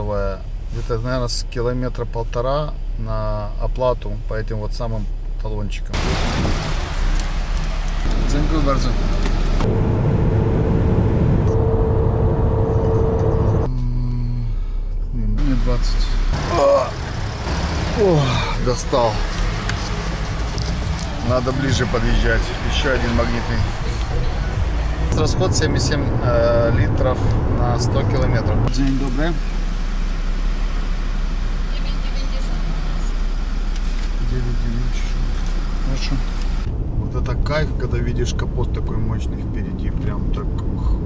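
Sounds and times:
steady traffic noise: 0.0s - 41.0s
car engine idling: 6.0s - 13.7s, 14.5s - 40.2s
person speaking: 17.9s - 24.5s.

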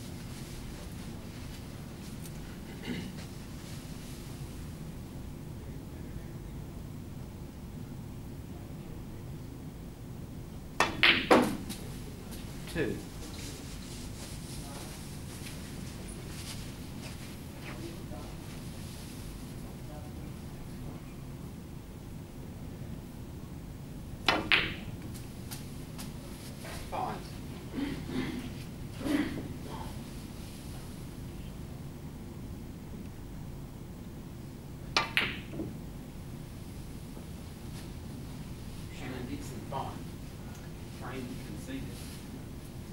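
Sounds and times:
cue tip striking ball: 10.8s - 11.9s, 24.3s - 24.9s, 34.9s - 35.8s
snooker balls clicking: 10.8s - 11.9s, 24.3s - 25.3s, 34.9s - 35.8s.

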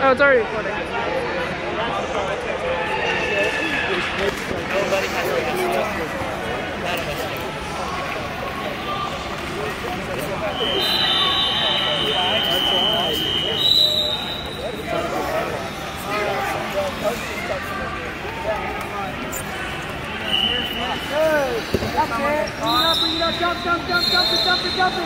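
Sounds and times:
hubbub of many voices: 0.0s - 25.0s.

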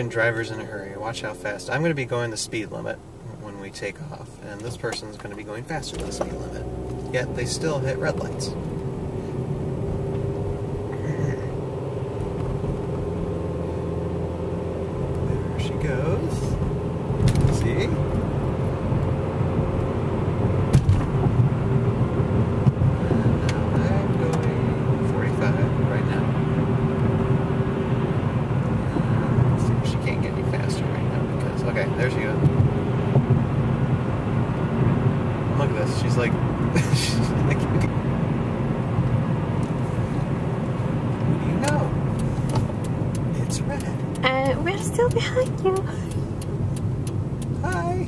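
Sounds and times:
car engine and road noise: 0.0s - 48.0s.

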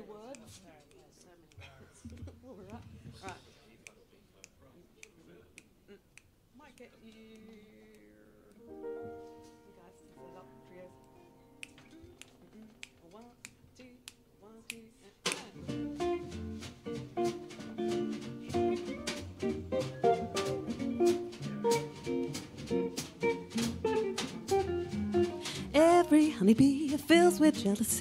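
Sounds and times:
jazz combo playing swing: 15.3s - 28.0s.

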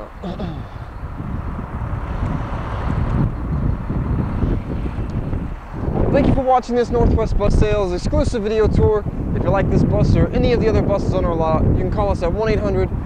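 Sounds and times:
steady low rumble: 0.0s - 13.0s
wind buffeting microphone: 0.0s - 13.0s.

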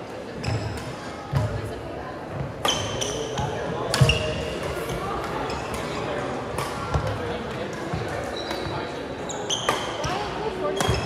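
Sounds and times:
murmur of voices: 0.0s - 11.0s
sneakers squeaking on court floor: 0.4s - 1.5s, 2.3s - 6.1s, 7.9s - 11.0s
racket hitting shuttlecock: 2.6s - 4.3s, 10.8s - 11.0s.

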